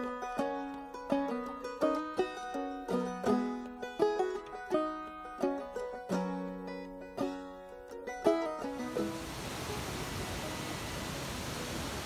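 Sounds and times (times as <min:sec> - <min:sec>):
waterfall rushing: 0:08.8 - 0:12.0.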